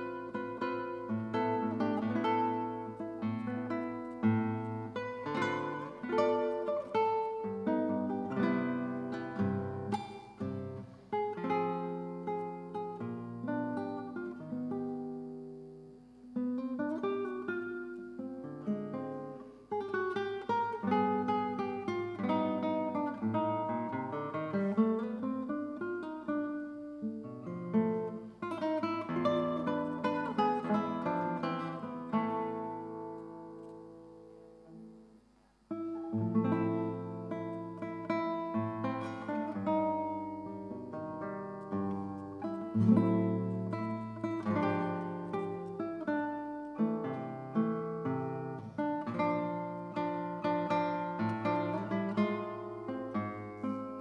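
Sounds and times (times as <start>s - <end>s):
solo classical guitar: 0.0s - 54.0s.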